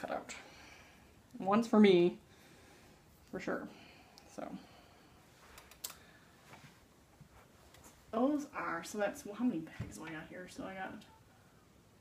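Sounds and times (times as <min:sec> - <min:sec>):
small clicks: 0:05.5 - 0:06.0.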